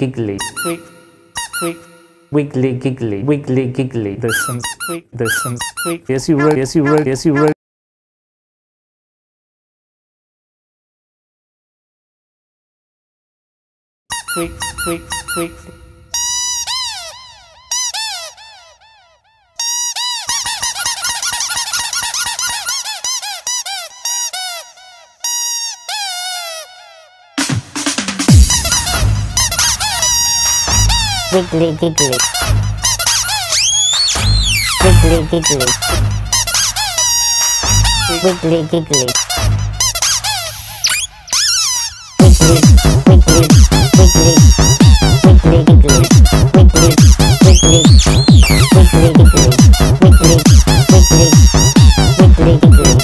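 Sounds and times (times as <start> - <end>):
rubber squeak toy squeaking: 0.4 - 2.1, 4.2 - 7.6, 14.1 - 27.1, 28.3 - 53.0.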